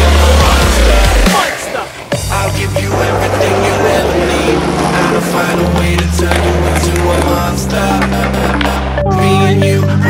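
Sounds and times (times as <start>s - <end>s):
skateboard wheels rolling on concrete: 0.0s - 9.0s
dubstep music with deep bass: 0.0s - 10.0s.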